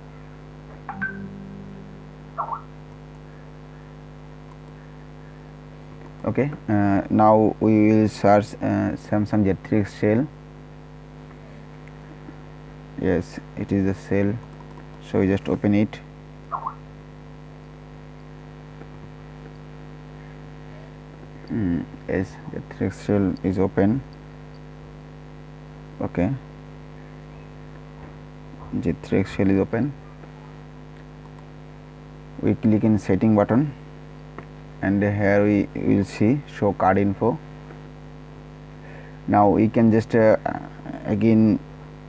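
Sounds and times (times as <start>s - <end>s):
low electrical hum: 0.0s - 42.0s.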